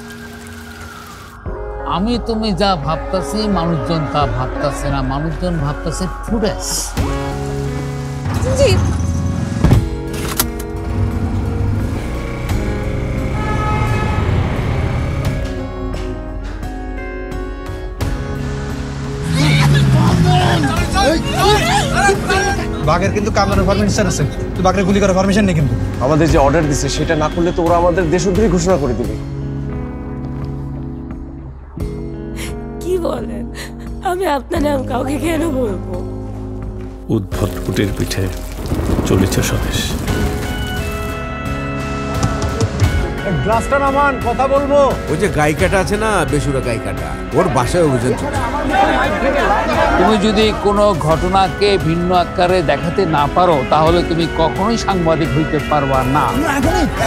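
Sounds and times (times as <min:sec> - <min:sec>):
heavy rain pouring: 0:00.0 - 0:01.4, 0:37.4 - 0:41.3
sustained trailer music tones: 0:07.0 - 0:32.3
thunder rumbling: 0:38.0 - 0:41.2.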